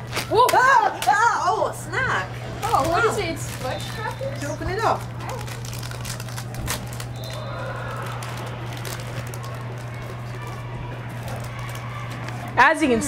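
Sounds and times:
steady low hum: 0:00.0 - 0:13.0
snack packet crinkling: 0:02.7 - 0:12.6.

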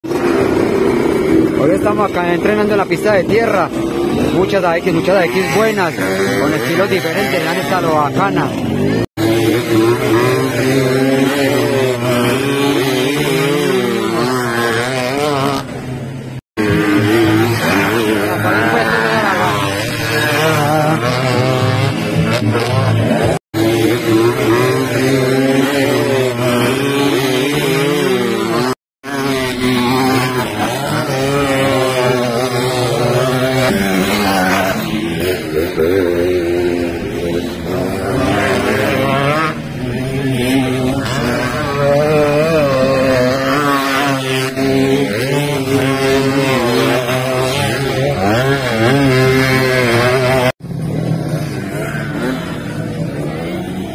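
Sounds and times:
dirt motorcycles revving: 0:00.0 - 0:53.9.

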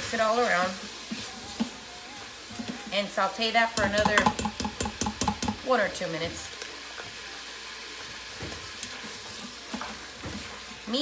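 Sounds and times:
vegetables sizzling in a pot: 0:00.0 - 0:11.0
spoon stirring and scraping: 0:00.1 - 0:05.6, 0:06.5 - 0:11.0.

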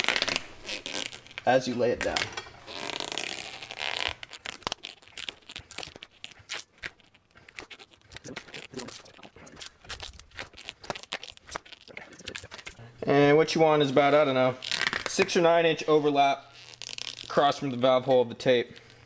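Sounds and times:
tape ripping off roll: 0:00.0 - 0:12.8, 0:14.4 - 0:15.5, 0:16.5 - 0:17.8
tape crackles and clicks: 0:00.0 - 0:12.9, 0:14.0 - 0:19.0.

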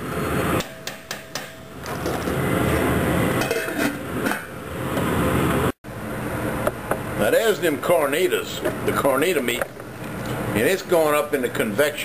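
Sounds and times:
metal tongs clanking on a pot: 0:03.4 - 0:04.5.

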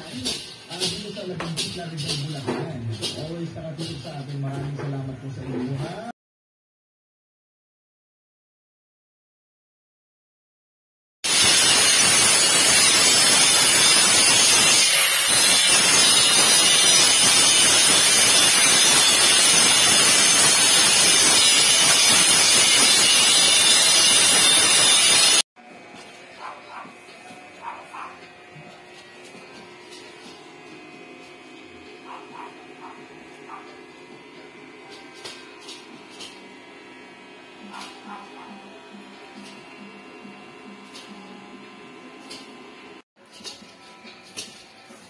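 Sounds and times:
arc welding hiss: 0:11.3 - 0:25.4.

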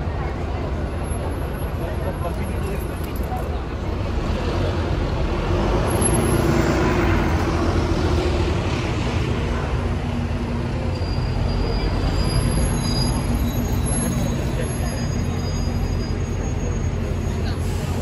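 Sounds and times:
low traffic rumble: 0:00.0 - 0:18.0
heavy vehicle engine passing: 0:03.9 - 0:18.0.

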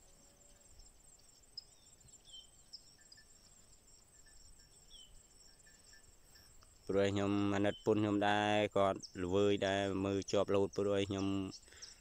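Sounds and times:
insects droning: 0:00.0 - 0:12.0
small birds chirping: 0:00.0 - 0:12.0.

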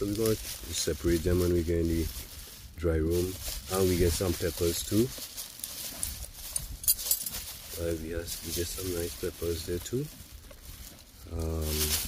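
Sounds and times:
low rustle of stalks: 0:00.0 - 0:12.0
sharp crackle of leaves: 0:00.0 - 0:12.0.

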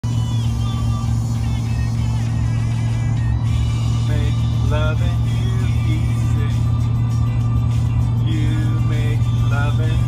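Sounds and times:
car engine and tyres drone: 0:00.0 - 0:10.0
country song on car radio: 0:00.0 - 0:10.0.

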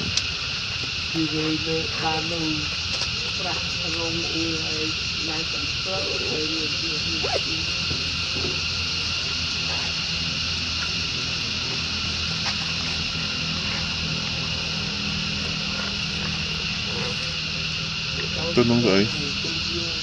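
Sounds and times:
high-pitched insect drone: 0:00.0 - 0:20.0
low steady hum: 0:00.0 - 0:20.0.

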